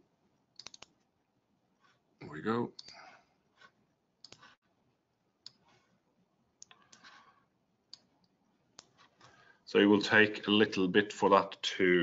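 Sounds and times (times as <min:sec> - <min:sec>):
computer mouse clicks: 0:00.5 - 0:01.1, 0:03.6 - 0:04.7, 0:05.4 - 0:05.9, 0:06.6 - 0:09.4
soft rustle: 0:05.5 - 0:06.1.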